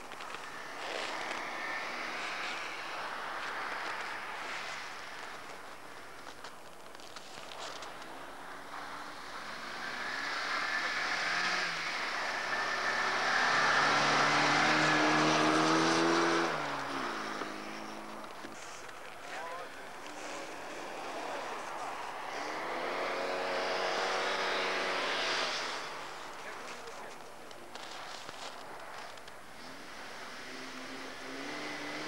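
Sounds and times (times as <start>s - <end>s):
rally car engines revving: 0.0s - 32.0s.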